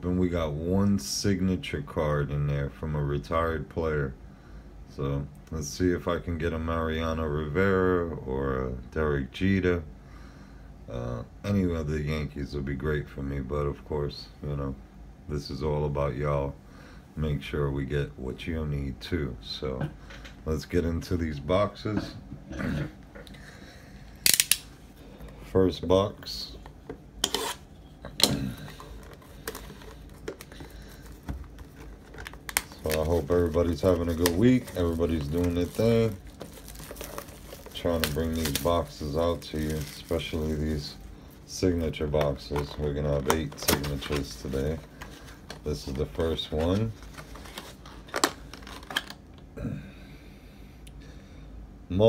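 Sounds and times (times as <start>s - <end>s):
cardboard and plastic rustling: 26.4s - 49.2s
plastic film crinkling: 27.2s - 49.2s.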